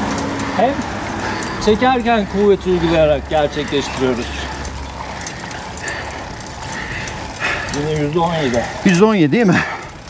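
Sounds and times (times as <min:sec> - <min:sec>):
bicycle tyre noise: 0:00.0 - 0:10.0.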